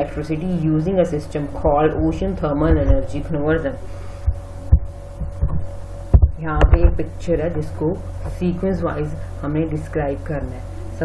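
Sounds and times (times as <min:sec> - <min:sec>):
steady low hum: 0:00.0 - 0:11.0
dull low thumps: 0:01.6 - 0:08.4.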